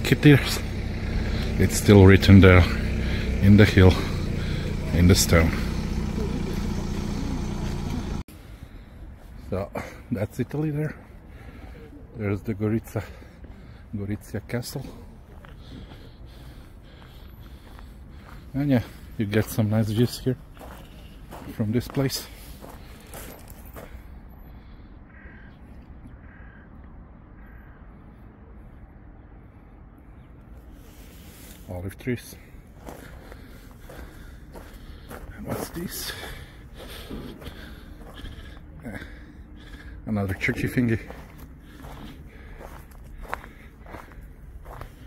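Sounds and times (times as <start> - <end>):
footsteps on gravel: 0.0 - 8.2, 14.5 - 24.2, 32.2 - 45.0
crow cawing: 23.8 - 28.3, 32.9 - 35.3, 36.0 - 45.0.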